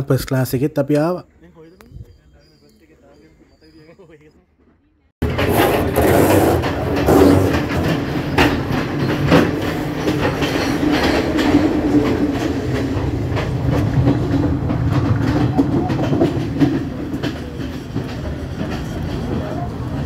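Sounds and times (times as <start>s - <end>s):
train wheels rumbling on rail: 2.8s - 20.0s
wheel clacks and knocks: 5.2s - 20.0s.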